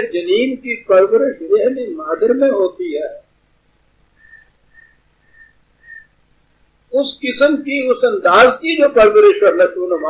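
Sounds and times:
short high whistle-like tones: 0:04.2 - 0:06.2.

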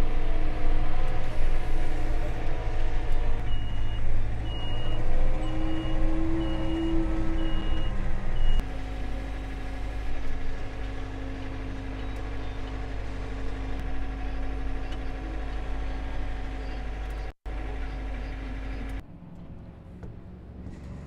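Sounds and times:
tractor diesel engine running: 0:00.0 - 0:21.0
backup alarm beeping: 0:03.5 - 0:08.6.

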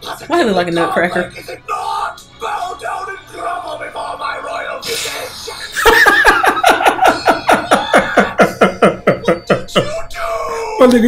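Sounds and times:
man laughing hard: 0:05.5 - 0:10.1.

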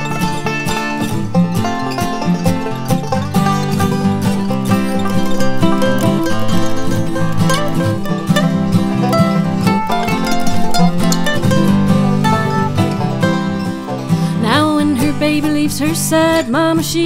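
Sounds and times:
bluegrass string band music: 0:00.0 - 0:17.0.

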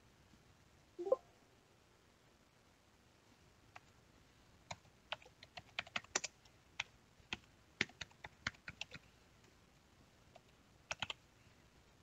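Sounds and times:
typing on computer keyboard: 0:04.7 - 0:09.0, 0:10.4 - 0:11.2.

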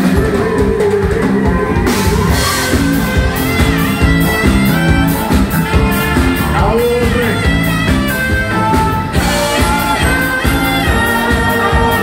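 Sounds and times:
drum kit beat: 0:00.0 - 0:12.0.

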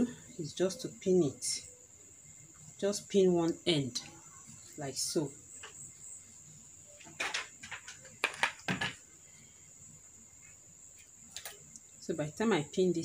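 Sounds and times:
faint high-pitched whine: 0:00.0 - 0:13.0.

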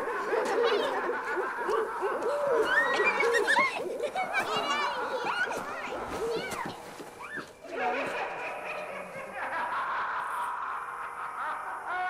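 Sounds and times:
wavering voice-like cry: 0:00.0 - 0:05.6.

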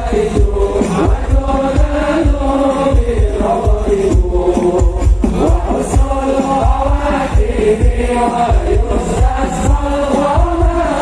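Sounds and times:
driving drumbeat: 0:00.0 - 0:11.0
men chanting in melody: 0:00.0 - 0:11.0.

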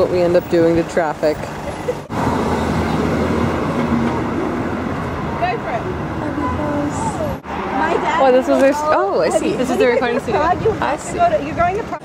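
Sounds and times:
road traffic passing: 0:00.0 - 0:12.0
faint voices: 0:05.2 - 0:12.0.

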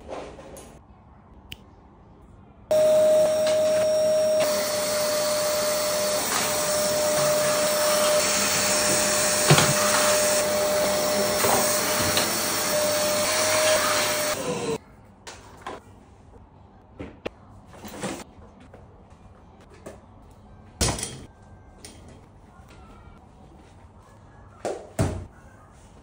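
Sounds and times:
vacuum cleaner running: 0:02.7 - 0:14.8.

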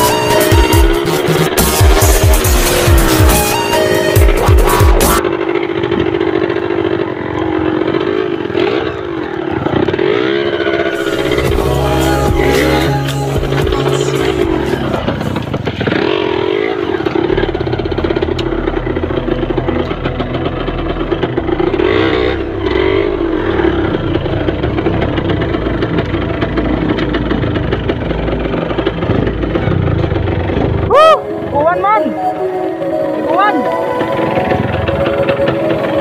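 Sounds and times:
motorcycle engine running: 0:00.0 - 0:36.0.

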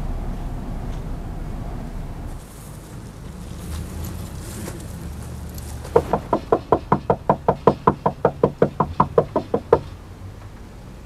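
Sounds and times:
rapid knocking on door: 0:05.9 - 0:09.9.

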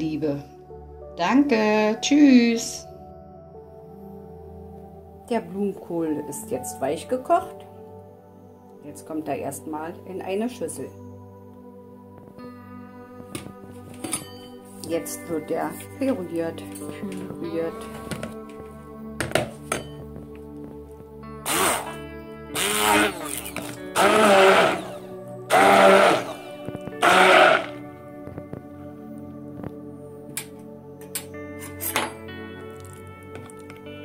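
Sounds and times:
background music: 0:00.0 - 0:34.0
stick blender whirring: 0:21.4 - 0:27.8.

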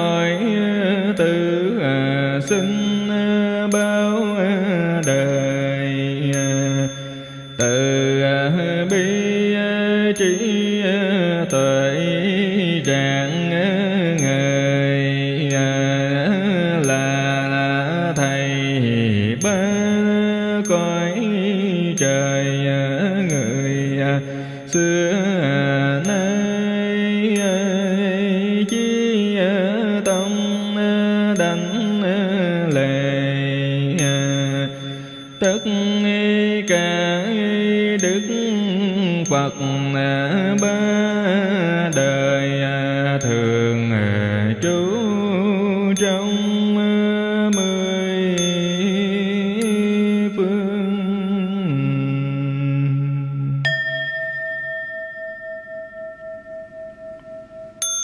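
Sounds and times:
monk chanting: 0:00.0 - 0:53.7.

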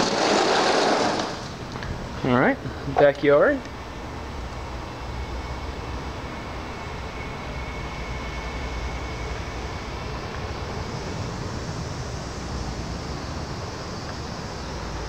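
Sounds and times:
hiss: 0:05.0 - 0:15.0.

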